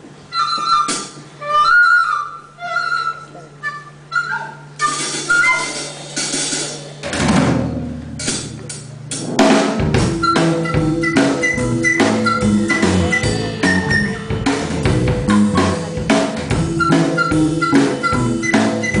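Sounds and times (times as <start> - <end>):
live band playing: 0.1 - 19.0
drum kit hits: 4.8 - 19.0
high melodic notes: 8.0 - 19.0.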